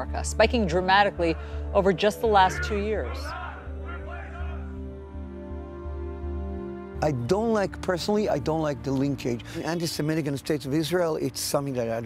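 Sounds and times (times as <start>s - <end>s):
television news voice: 0.0s - 4.6s, 7.0s - 12.0s
soft background music: 0.0s - 12.0s.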